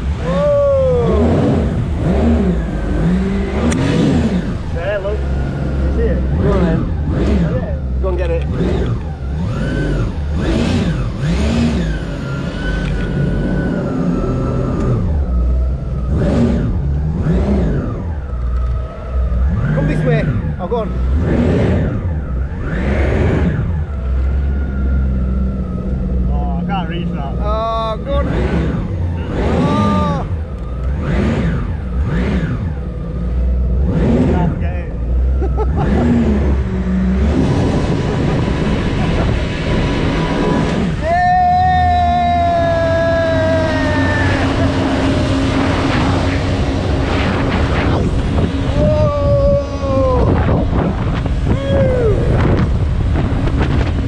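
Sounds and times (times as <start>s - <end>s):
low rumble: 0.0s - 54.0s
speedboat engine running fast: 0.0s - 54.0s
wind: 0.0s - 54.0s.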